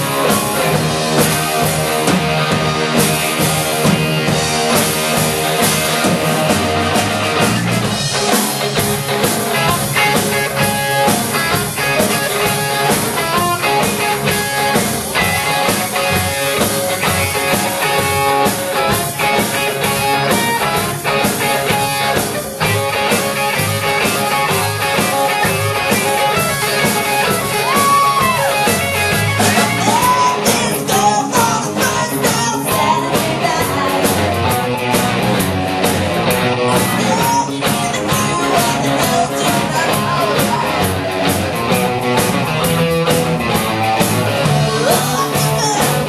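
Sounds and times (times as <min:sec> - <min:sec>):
bent gliding guitar notes: 0:00.0 - 0:46.0
drums: 0:00.0 - 0:46.0
electric guitars: 0:00.0 - 0:46.0.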